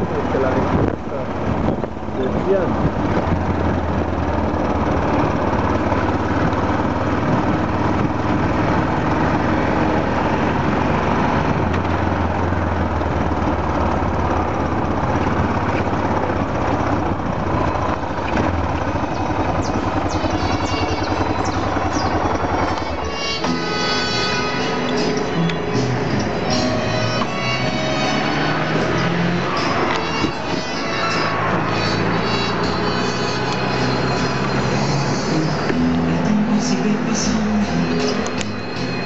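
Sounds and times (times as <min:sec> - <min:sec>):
road noise: 0:00.0 - 0:39.0
small motorcycle engine running: 0:02.6 - 0:39.0.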